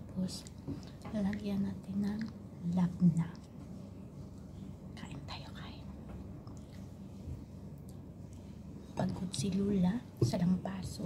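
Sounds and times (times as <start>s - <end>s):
low room hum: 0.0s - 11.0s
person whispering: 5.0s - 5.9s.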